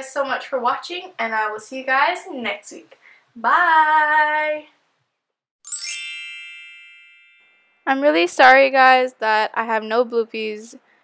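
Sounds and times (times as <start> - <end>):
sparkly chime sound effect: 5.6 - 7.9.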